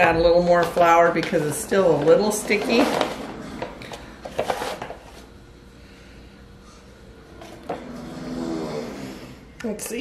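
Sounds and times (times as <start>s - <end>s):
kitchen utensils knocking and scraping: 0.0s - 5.2s.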